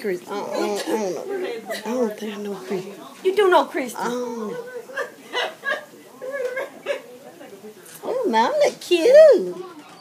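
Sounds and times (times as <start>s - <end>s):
indistinct talk in room: 0.0s - 10.0s.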